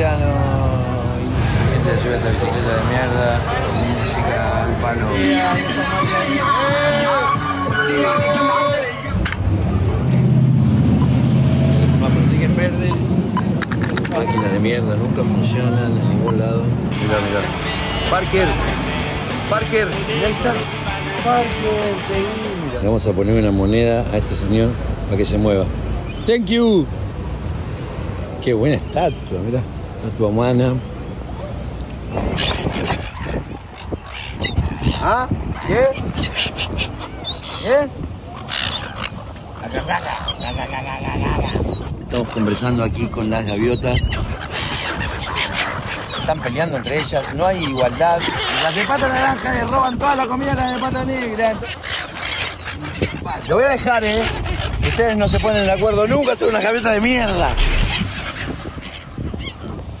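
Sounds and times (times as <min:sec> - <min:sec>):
gulls squawking: 0:00.0 - 0:09.4, 0:11.0 - 0:27.4, 0:28.5 - 1:00.0
low background rush: 0:00.0 - 0:34.8, 0:51.5 - 1:00.0.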